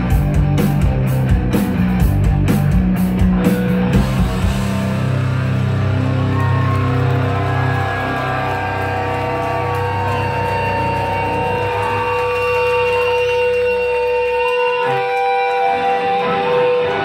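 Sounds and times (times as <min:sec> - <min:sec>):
low bass drone: 0:00.0 - 0:14.4.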